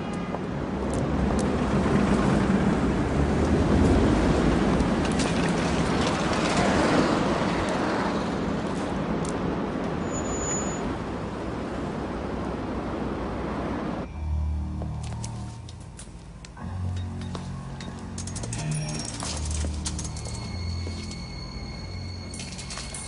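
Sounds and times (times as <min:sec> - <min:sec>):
cars passing along a street: 0:00.0 - 0:23.0.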